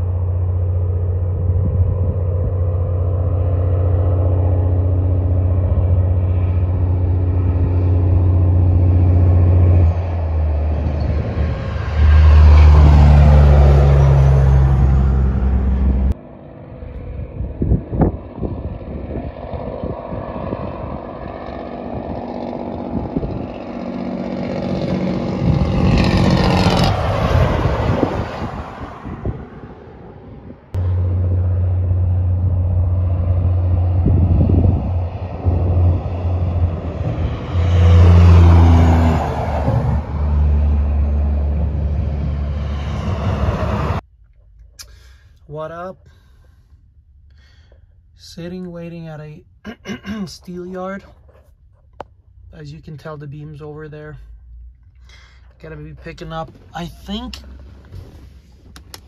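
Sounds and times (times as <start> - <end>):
low engine drone: 0.0 - 59.0
vehicles passing by: 0.0 - 59.0.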